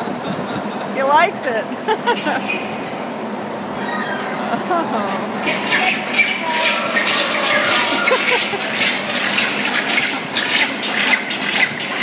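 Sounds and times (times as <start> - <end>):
faint voices: 3.6 - 12.0.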